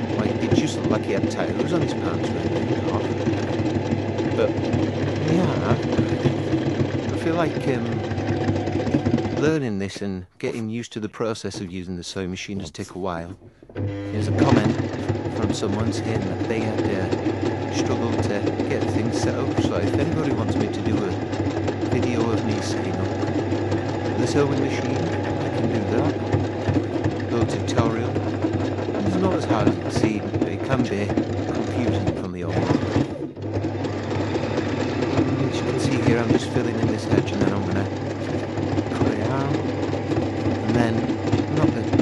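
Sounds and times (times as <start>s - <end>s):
sewing machine running: 0.0s - 9.9s, 13.8s - 42.0s.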